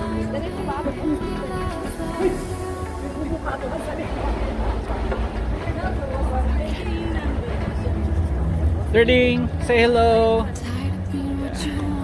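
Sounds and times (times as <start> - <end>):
faint voices talking: 0.0 - 12.0
low street rumble: 0.0 - 12.0.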